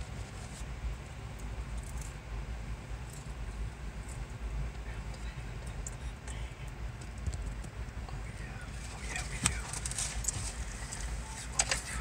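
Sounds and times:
freight cars rolling rumble: 0.0s - 12.0s.

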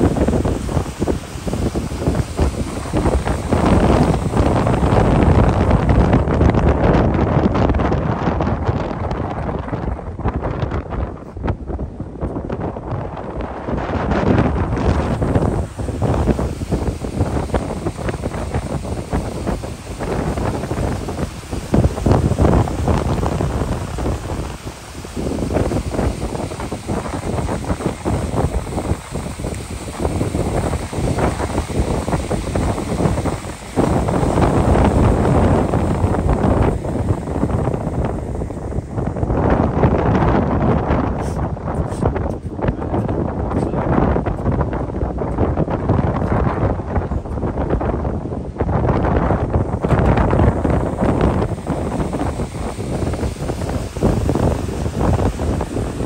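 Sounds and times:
water rushing along hull: 0.0s - 7.8s, 14.0s - 42.2s, 44.1s - 56.0s
wind buffeting microphone: 0.0s - 56.0s.

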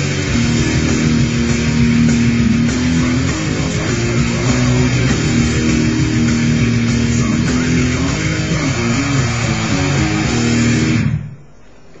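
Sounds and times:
distorted electric guitar riff: 0.0s - 11.9s
faint noise: 0.0s - 12.0s.

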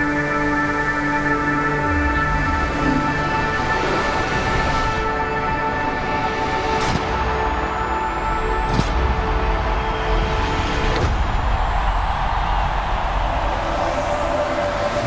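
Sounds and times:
sustained droning chord: 0.0s - 11.0s.

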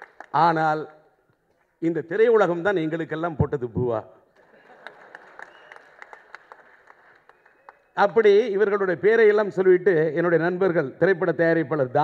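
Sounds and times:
sparse applause: 4.5s - 8.0s.

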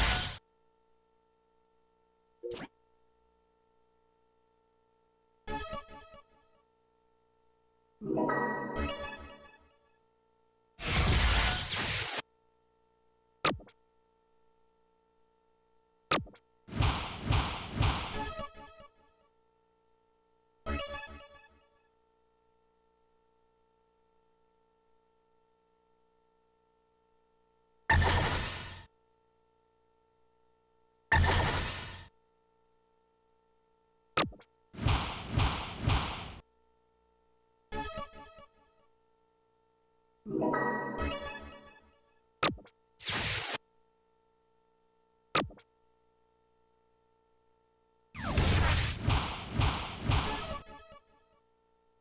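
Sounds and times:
dart machine hit sound effect: 10.8s - 12.2s, 16.1s - 18.5s, 34.2s - 36.4s, 48.2s - 50.8s
electronic falling zap: 40.3s - 41.8s, 48.2s - 50.8s.

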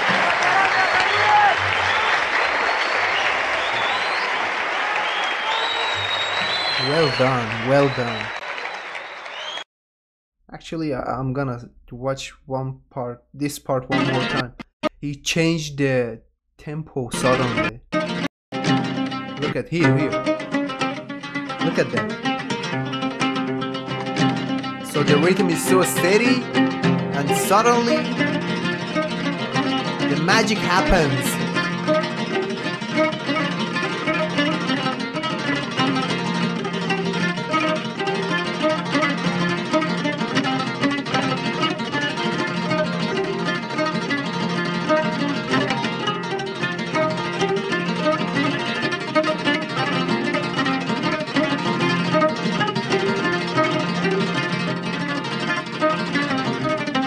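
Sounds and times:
audience applauding: 0.0s - 9.7s, 30.1s - 31.4s
shouts and whistles: 0.1s - 9.6s
oud plucked notes: 17.1s - 57.0s.

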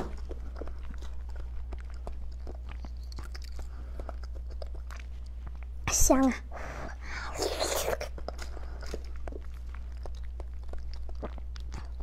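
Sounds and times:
chewing clicks: 0.0s - 5.7s, 8.0s - 12.0s
wet eating sounds: 0.0s - 6.0s, 6.6s - 12.0s.

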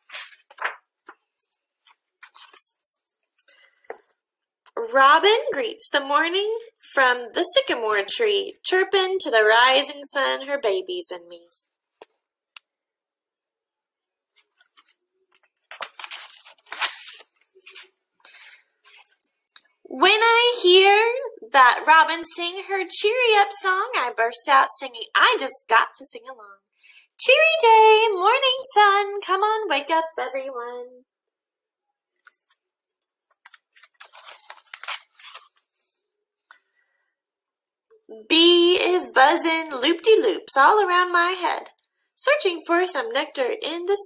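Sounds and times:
book page turning: 0.0s - 2.9s, 14.3s - 18.0s, 33.3s - 36.0s
paper rustling: 0.0s - 3.6s, 14.3s - 19.1s, 33.3s - 36.0s.

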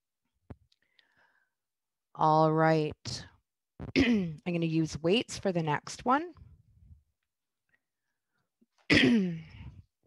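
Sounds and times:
woman clearing throat: 3.9s - 4.4s, 8.9s - 9.7s.

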